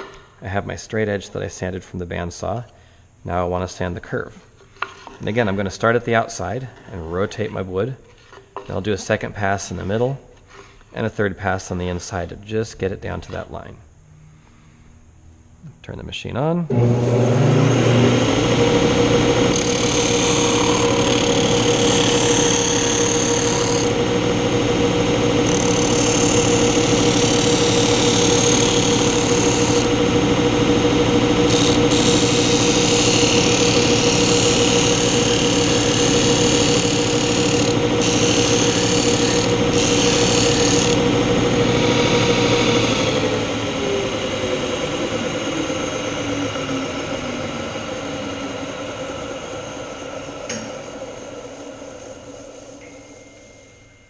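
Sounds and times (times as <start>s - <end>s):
motor winding down: 16.7s - 53.1s
sander motor humming: 16.7s - 53.1s.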